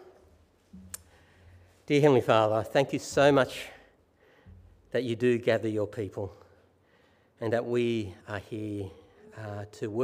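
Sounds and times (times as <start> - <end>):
man speaking: 1.8 - 3.9, 4.9 - 6.5, 7.4 - 10.0.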